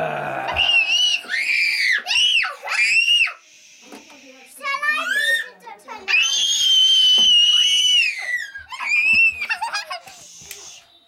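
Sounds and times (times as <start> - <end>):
girl screaming playfully: 0.5 - 3.4
girl squealing: 0.5 - 3.4, 6.1 - 9.4.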